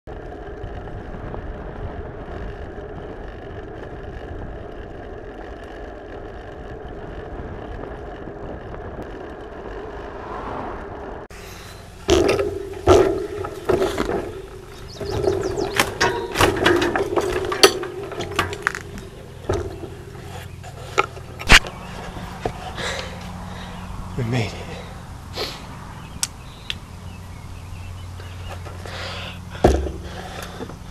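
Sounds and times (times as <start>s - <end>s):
wind noise: 0.1s - 24.2s
bike tyres on paved road: 0.1s - 30.9s
knocks rattles and scraping: 10.8s - 23.8s, 27.9s - 30.9s.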